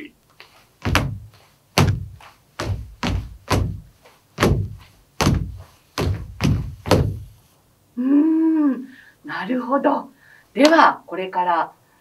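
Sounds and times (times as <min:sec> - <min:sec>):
feet stamping on hard floor: 0:00.4 - 0:07.4.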